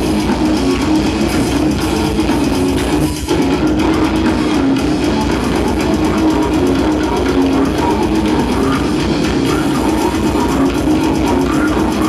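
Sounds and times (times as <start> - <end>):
distorted guitars: 0.0 - 12.0
rapid drumming: 0.0 - 12.0.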